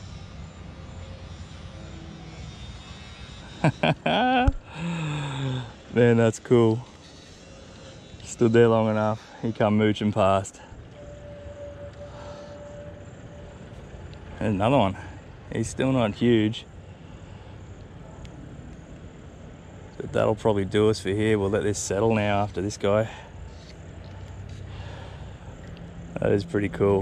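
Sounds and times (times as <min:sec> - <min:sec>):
distant engine drone: 0:00.0 - 0:27.0
faint low hum: 0:00.0 - 0:27.0
thin held whine: 0:00.0 - 0:27.0.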